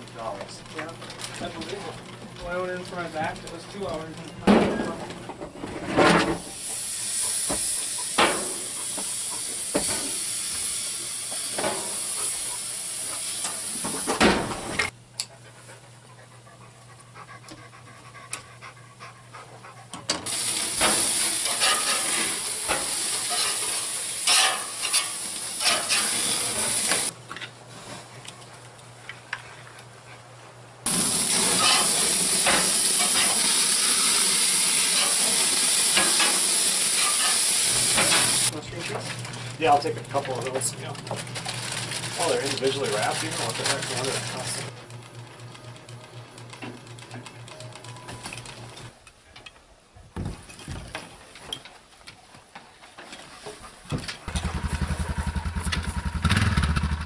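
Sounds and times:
patties sizzling on a grill: 6.4s - 14.1s, 20.3s - 27.1s, 30.9s - 38.5s
clicks and scrapes on metal grate: 21.4s - 26.2s.

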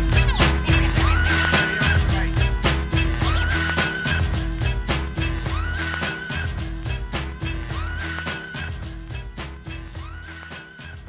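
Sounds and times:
swooping synth lead: 0.0s - 8.8s
hip-hop music: 0.0s - 11.0s.

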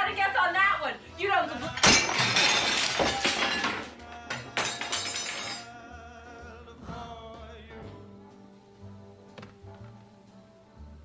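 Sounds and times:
dinner plate smashing: 1.6s - 5.7s.

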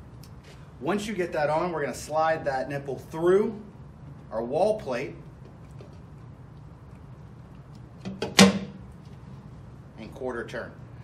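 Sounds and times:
pipe fitting clunk: 8.0s - 8.8s.

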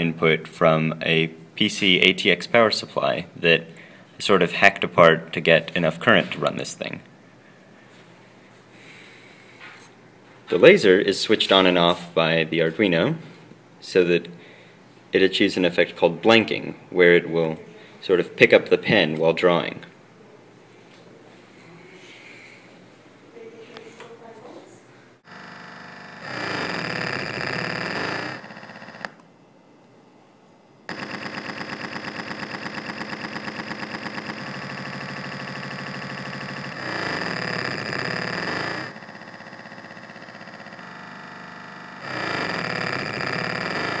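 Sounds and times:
loudspeakers buzzing electronically: 25.2s - 29.4s, 30.8s - 44.0s.

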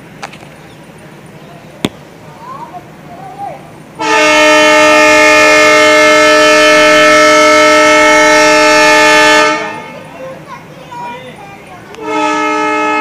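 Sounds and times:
locomotive air horn blast: 4.0s - 10.1s, 11.9s - 13.0s.

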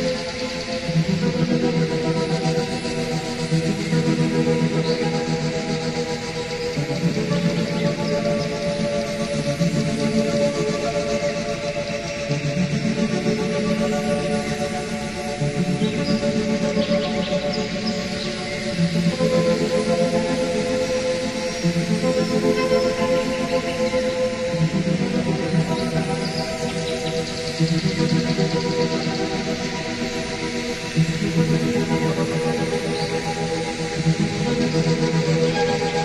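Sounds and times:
slow ambient electronic music: 0.0s - 36.0s.

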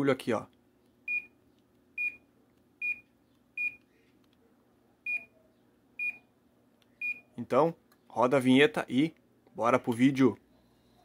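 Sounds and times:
air conditioner short high beeps: 1.1s - 1.4s, 2.0s - 3.8s, 5.1s - 5.4s, 6.0s - 6.3s, 7.0s - 7.3s.

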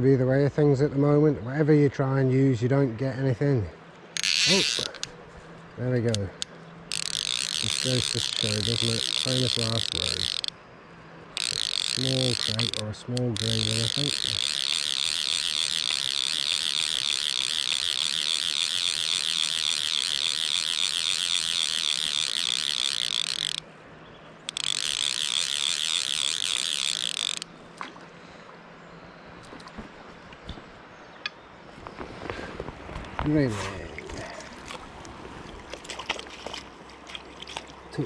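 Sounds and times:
river water: 0.2s - 38.0s
fly reel ratcheting buzz: 4.2s - 5.1s, 6.1s - 10.6s, 11.3s - 23.7s, 24.4s - 27.5s.

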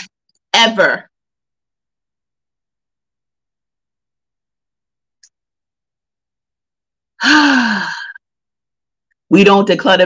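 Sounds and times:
woman sighing: 7.2s - 8.2s.

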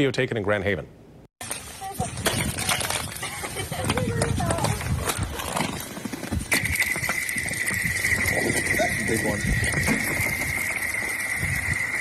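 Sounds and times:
ice chunks skidding on lake ice: 2.0s - 12.0s
lake ice chirping tones: 5.9s - 12.0s
high ringing tone: 6.5s - 12.0s.

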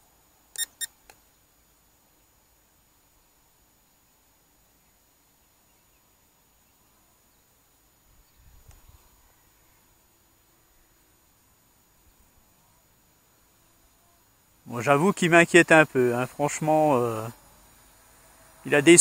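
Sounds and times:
faint hiss: 0.0s - 19.0s
faint click: 0.5s - 1.3s, 8.6s - 8.9s
high-pitched electronic beeps: 0.6s - 0.9s.

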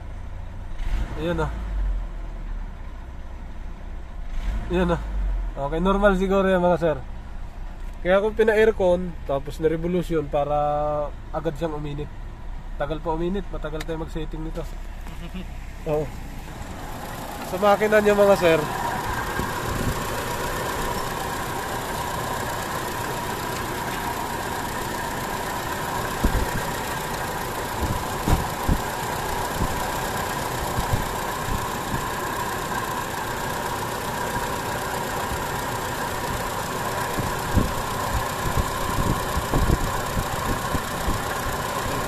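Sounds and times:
car engine idling: 0.0s - 42.0s.

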